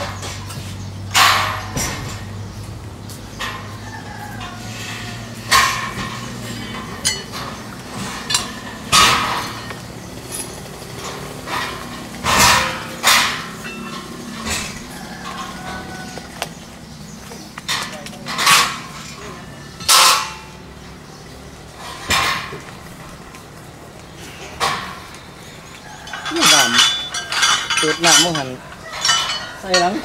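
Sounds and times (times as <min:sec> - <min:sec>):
steel pipes clanking on ground: 0:00.0 - 0:30.0.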